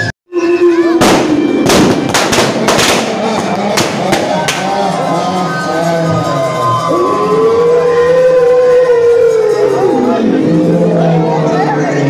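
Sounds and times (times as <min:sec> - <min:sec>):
firecrackers banging: 0:01.0 - 0:05.6.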